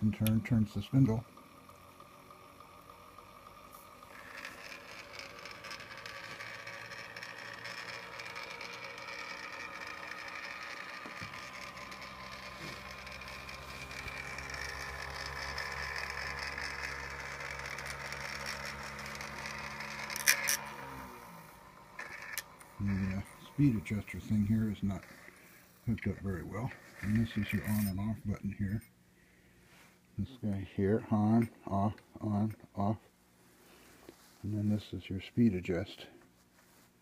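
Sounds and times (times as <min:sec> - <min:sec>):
spring motor whirring: 0:00.0 - 0:28.9
low hum: 0:00.0 - 0:29.6.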